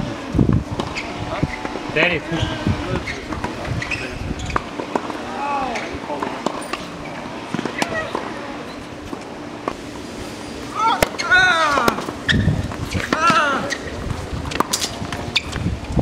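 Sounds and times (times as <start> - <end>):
voices in background: 1.0 - 9.3
tennis balls struck by rackets: 3.0 - 8.4, 10.8 - 15.6
people calling out: 10.6 - 12.2, 13.0 - 13.9.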